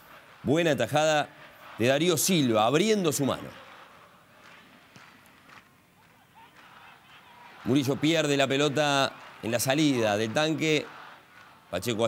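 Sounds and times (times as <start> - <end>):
faint stadium crowd ambience: 0.0 - 12.0.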